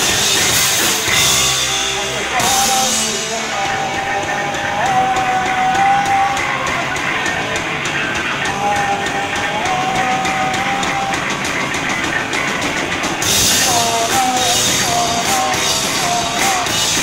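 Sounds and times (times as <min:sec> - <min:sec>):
punk rock band playing: 0:00.0 - 0:17.0.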